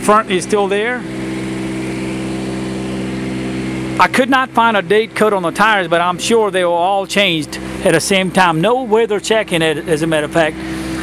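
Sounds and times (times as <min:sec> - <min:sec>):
diesel engine humming: 0:00.0 - 0:11.0.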